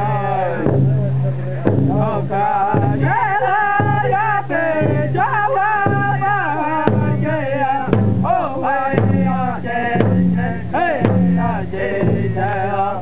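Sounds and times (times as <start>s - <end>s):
large drum beating: 0.0s - 13.0s
men singing together: 1.5s - 13.0s.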